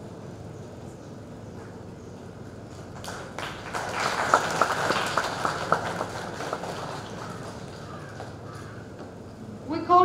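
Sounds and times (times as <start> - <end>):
crowd clapping: 2.9 - 8.5
sharp individual claps: 3.0 - 8.4.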